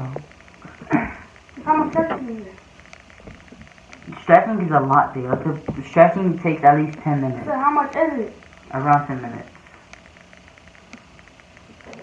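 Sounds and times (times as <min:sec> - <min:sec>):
faint clicks: 0:00.0 - 0:12.0
low steady hiss: 0:00.0 - 0:12.0.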